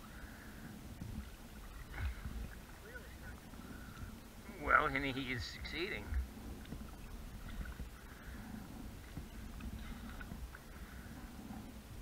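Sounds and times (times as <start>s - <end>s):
canoe paddles pulling through water: 0.0s - 12.0s
low rumble: 0.0s - 12.0s.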